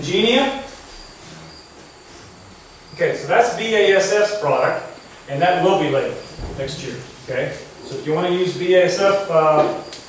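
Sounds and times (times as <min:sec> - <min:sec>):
insect chirping: 0:00.0 - 0:10.0.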